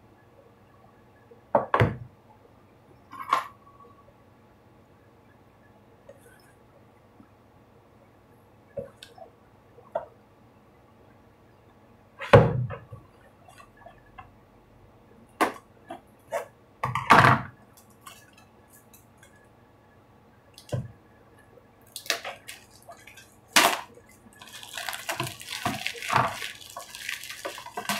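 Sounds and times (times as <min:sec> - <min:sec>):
plastic wrapper crinkling: 0:21.9 - 0:27.9.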